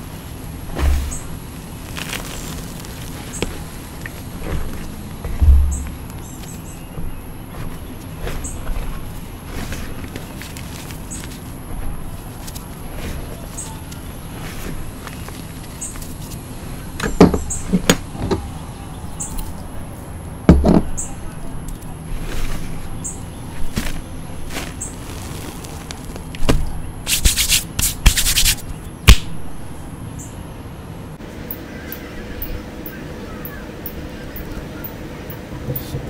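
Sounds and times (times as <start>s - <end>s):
low steady rumble: 0.0s - 27.1s
dull thump: 0.7s - 1.3s, 4.4s - 6.2s, 17.0s - 18.5s, 20.5s - 21.0s
dull thumps: 0.7s - 1.4s, 3.4s - 10.2s, 17.0s - 18.5s, 20.5s - 21.0s
gloved hands crushing chalk powder: 0.8s - 16.4s, 23.7s - 29.3s
hands working chalk: 27.1s - 28.6s.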